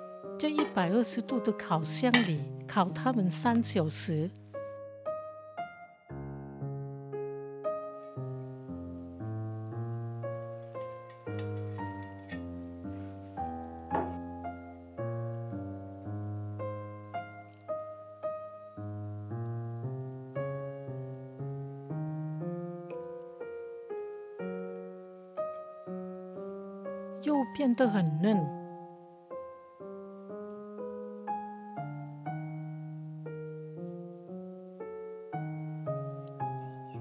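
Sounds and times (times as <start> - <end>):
slow piano music: 0.0 - 37.0.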